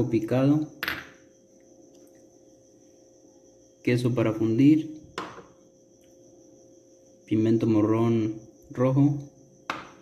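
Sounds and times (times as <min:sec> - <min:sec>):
glass bowl knocking on tiles: 0:00.8 - 0:01.2.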